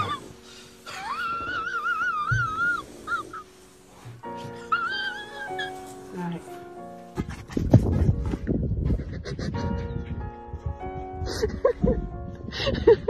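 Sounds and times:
dog whining: 0.0s - 3.6s, 4.4s - 6.4s
background music with held notes: 0.0s - 13.0s.

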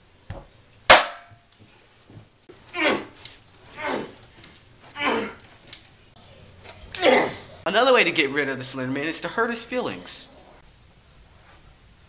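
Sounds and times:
loud sharp ringing bang: 0.9s - 1.4s.

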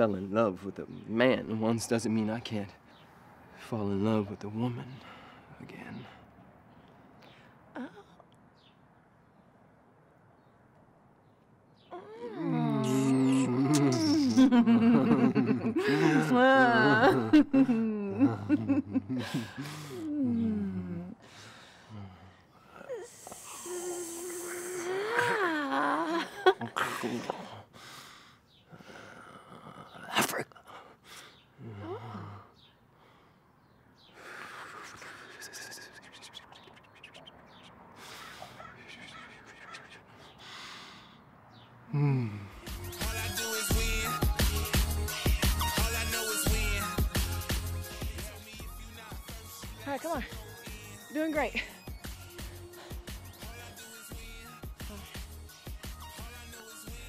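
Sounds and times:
voices chanting meditation hum: 11.9s - 27.7s
person breathing heavily: 19.2s - 25.4s, 26.8s - 29.6s, 30.7s - 35.9s, 37.9s - 39.2s, 40.0s - 42.6s, 52.6s - 53.2s.

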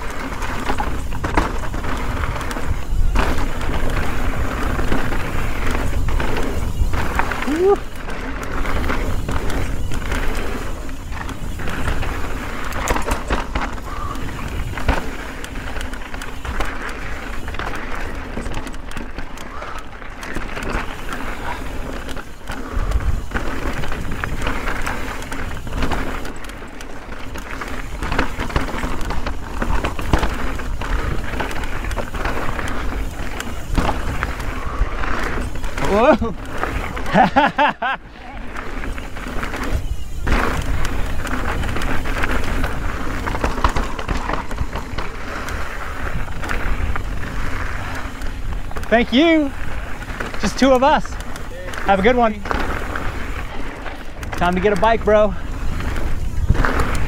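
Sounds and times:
bike rattling and knocking: 0.0s - 57.0s
bike tyres crunching on gravel: 0.0s - 57.0s
wind rumble on microphone: 55.3s - 57.0s.

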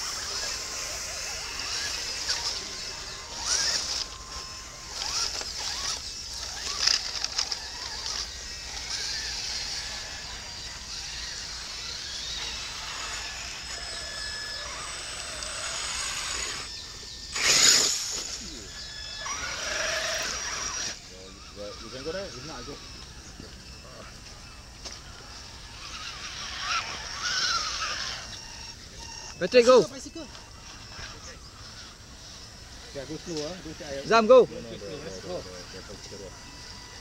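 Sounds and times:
rc truck motors whining: 0.0s - 37.0s
tyres squelching through mud: 4.9s - 9.8s, 17.4s - 18.4s, 25.7s - 28.3s.

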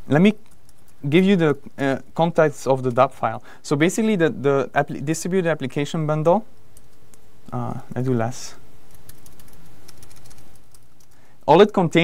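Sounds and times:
keyboard typing: 0.2s - 1.6s, 6.6s - 7.2s, 8.8s - 11.2s.

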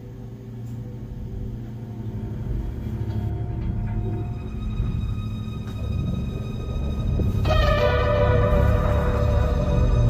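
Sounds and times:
dramatic soundtrack drone: 0.0s - 10.0s.

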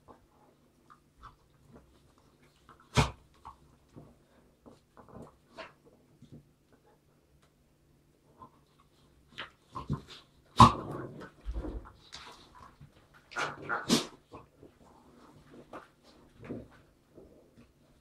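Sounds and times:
dogs growling while play-fighting: 9.8s - 12.0s.

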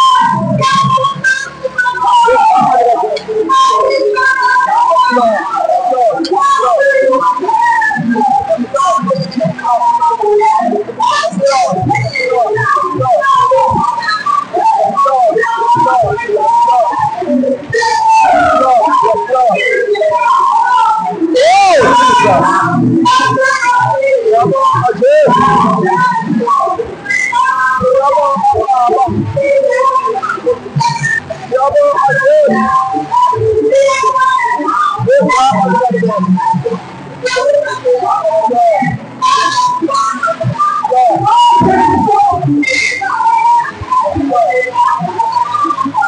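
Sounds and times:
congregation praying aloud: 0.0s - 46.0s
whistle-like cry: 0.0s - 46.0s
woman singing into microphone: 0.0s - 46.0s.

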